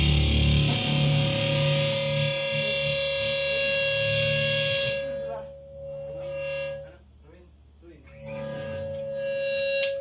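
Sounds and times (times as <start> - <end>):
distorted electric guitar chord: 0.0 - 7.0, 8.1 - 10.0.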